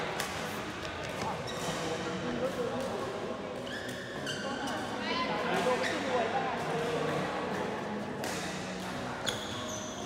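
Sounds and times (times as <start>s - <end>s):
shoes squeaking on court floor: 1.4s - 2.0s, 3.6s - 4.8s, 9.2s - 10.0s.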